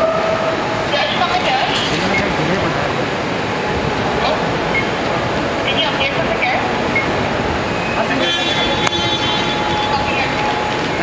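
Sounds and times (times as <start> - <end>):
traffic noise: 0.0 - 11.0
vehicle horn: 8.2 - 10.7.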